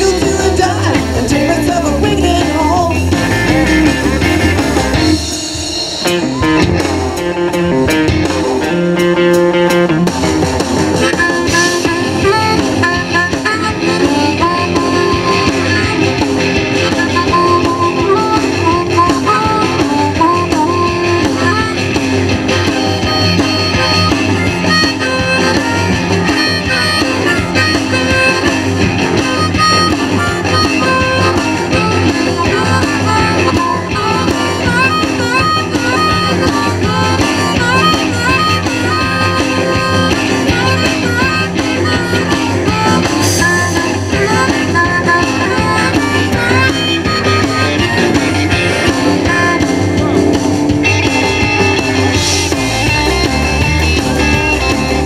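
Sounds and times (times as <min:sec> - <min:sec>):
electric guitar lead bending notes: 0:00.0 - 0:55.0
rock band playing instrumental: 0:00.0 - 0:55.0.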